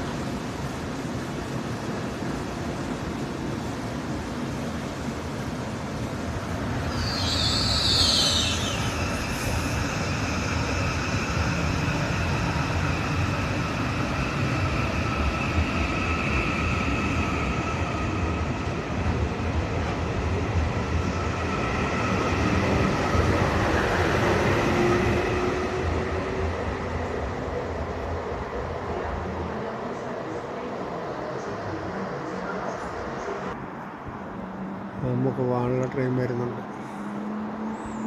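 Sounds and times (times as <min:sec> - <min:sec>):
train rumbling: 0:00.0 - 0:38.0
train wheel squeal: 0:06.7 - 0:13.2.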